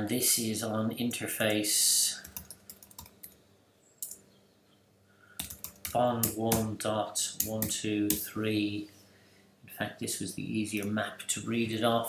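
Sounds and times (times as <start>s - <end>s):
computer keyboard typing: 2.2s - 3.4s, 5.4s - 6.7s, 7.4s - 8.2s.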